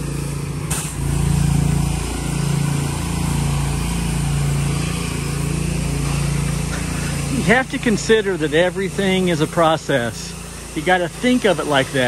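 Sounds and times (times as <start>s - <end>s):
wand spraying onto concrete: 0.0s - 1.8s
pressure washer engine running: 0.0s - 12.0s.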